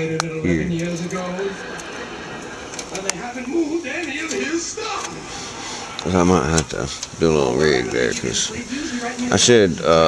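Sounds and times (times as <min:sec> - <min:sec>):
man mumbling: 0:00.4 - 0:01.0.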